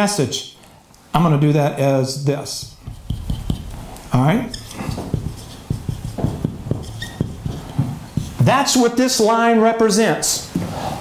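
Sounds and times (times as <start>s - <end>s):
marker writing on whiteboard: 2.6s - 9.0s.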